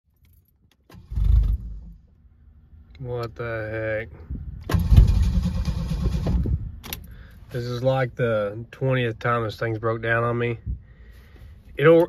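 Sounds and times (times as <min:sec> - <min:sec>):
starter motor cranking engine: 0:04.7 - 0:06.5.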